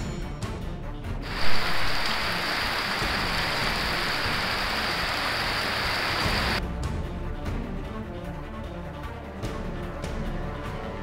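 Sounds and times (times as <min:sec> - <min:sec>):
heavy rain pouring: 0:01.2 - 0:06.6.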